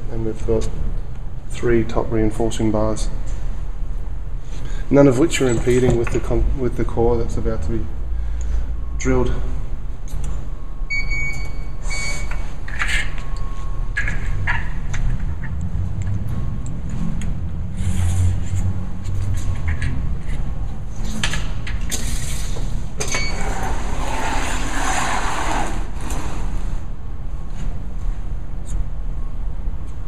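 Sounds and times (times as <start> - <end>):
low rumble of machinery: 0.0 - 30.0
short high beeps: 10.9 - 12.4.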